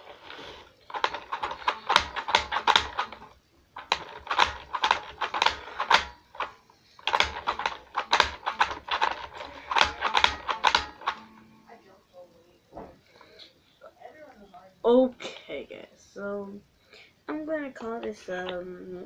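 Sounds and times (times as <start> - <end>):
toy spin art machine rattling: 0.0 - 11.3.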